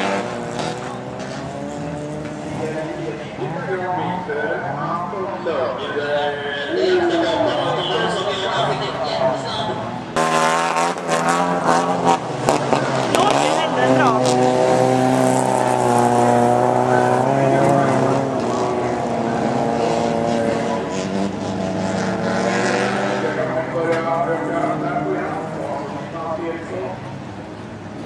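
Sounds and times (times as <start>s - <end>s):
race car engines revving: 0.0s - 28.0s.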